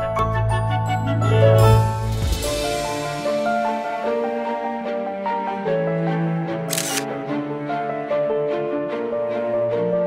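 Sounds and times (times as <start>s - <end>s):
gentle instrumental music: 0.0s - 10.0s
camera shutter snap: 6.7s - 7.1s.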